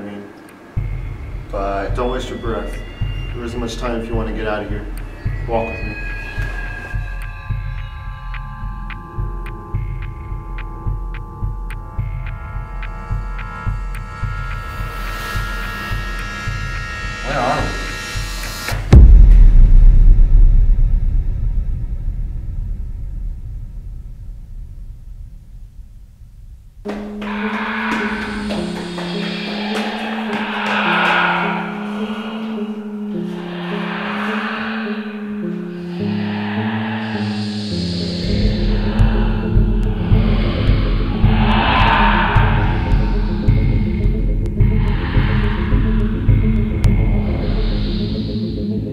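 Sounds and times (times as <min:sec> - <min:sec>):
low pulse: 0:00.7 - 0:48.9
sustained high tones: 0:00.8 - 0:09.4, 0:26.9 - 0:48.8
repeating bass figure: 0:30.2 - 0:47.7
loud deep boom: 0:38.1 - 0:46.4.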